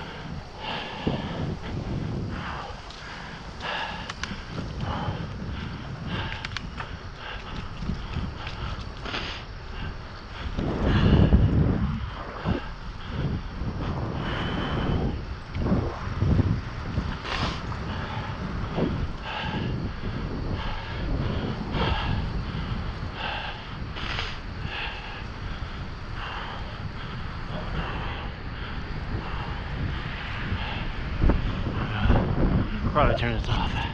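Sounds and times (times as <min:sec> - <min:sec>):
wind rushing over microphone: 0:00.0 - 0:33.9.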